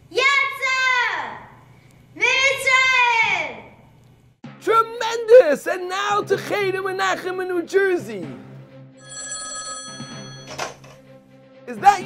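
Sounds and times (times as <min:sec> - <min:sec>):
telephone ringing: 0:09.0 - 0:11.0.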